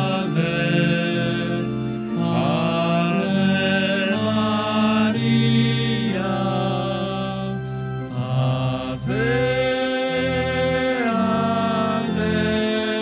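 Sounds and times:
voices singing a slow hymn: 0.0s - 13.0s.

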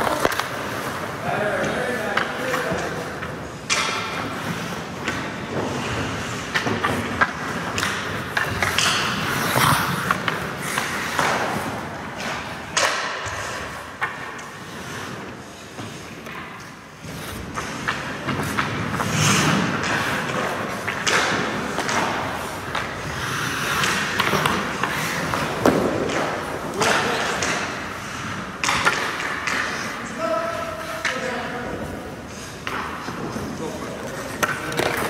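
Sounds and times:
skate blades scraping on ice: 0.0s - 35.0s
thuds of pucks and sticks: 0.0s - 35.0s.

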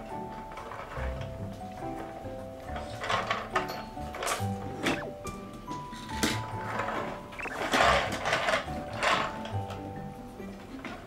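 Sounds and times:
background music: 0.0s - 11.0s
plastic toys rattling: 0.3s - 5.0s, 5.7s - 9.8s.

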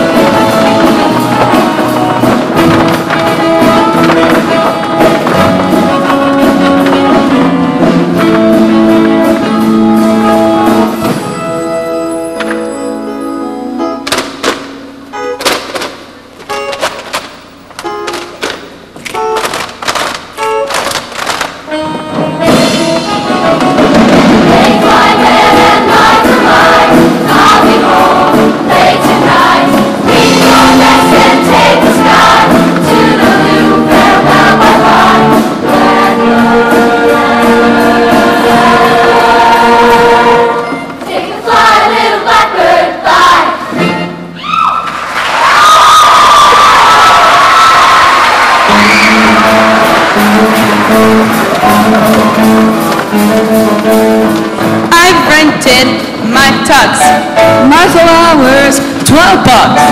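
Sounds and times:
choir singing in harmony: 0.0s - 8.0s, 24.0s - 44.1s
band accompaniment: 0.0s - 44.6s, 47.9s - 59.9s.

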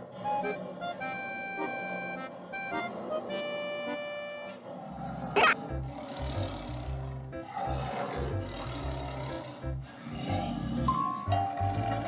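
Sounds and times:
tiger roar from small speakers: 0.0s - 3.8s, 4.6s - 11.0s, 11.6s - 12.0s
background music with bass line: 5.6s - 12.0s.

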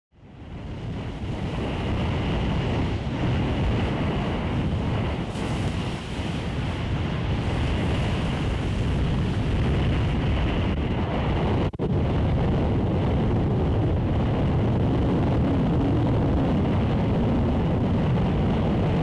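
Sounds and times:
wind: 0.1s - 19.0s
surf rushing: 0.4s - 19.0s.

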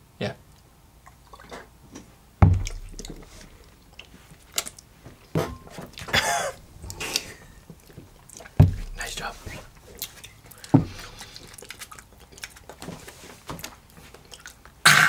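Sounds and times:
shot glass thumping on bar: 2.4s - 3.2s
short breaths and mouth sounds: 6.5s - 13.4s.

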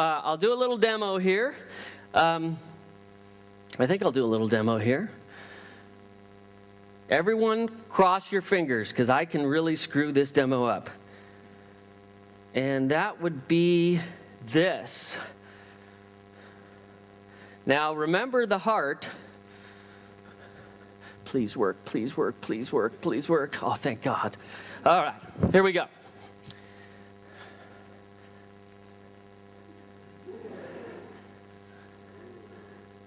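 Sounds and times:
faint mains hum: 0.0s - 33.0s
faint murmur: 29.7s - 33.0s.

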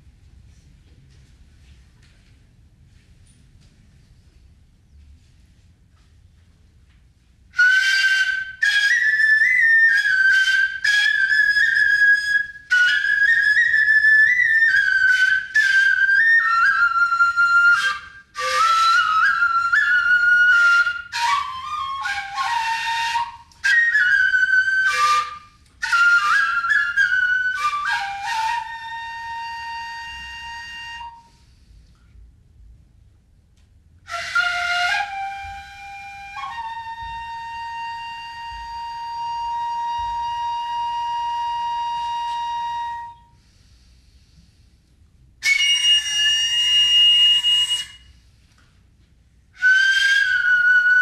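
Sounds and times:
breathy bamboo flute: 7.5s - 32.2s, 34.1s - 44.8s, 45.4s - 48.9s, 49.5s - 51.0s.

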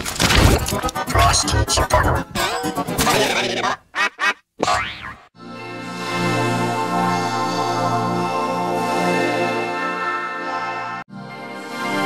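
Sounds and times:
cartoon boing sounds: 4.6s - 5.3s.

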